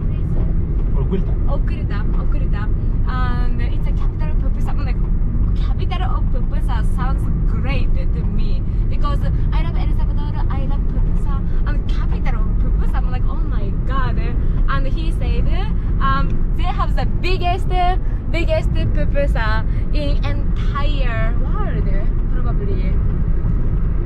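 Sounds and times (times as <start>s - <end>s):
people talking: 0.0s - 23.0s
car engine and road rumble: 0.0s - 24.0s.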